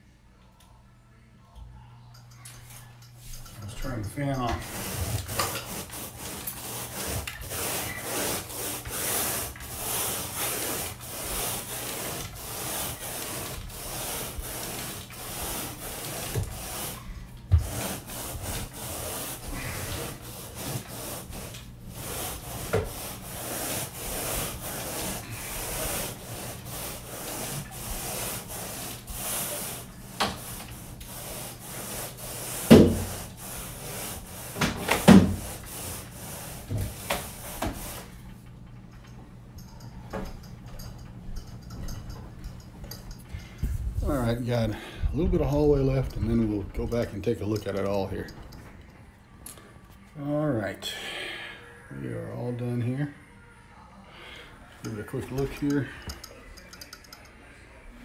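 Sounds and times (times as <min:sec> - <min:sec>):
rake rasping through carpet: 0:03.7 - 0:38.1.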